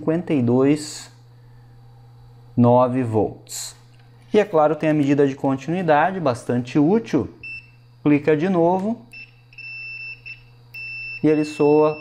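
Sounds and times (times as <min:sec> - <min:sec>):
multimeter continuity beep: 0:07.4 - 0:08.2, 0:09.1 - 0:12.0.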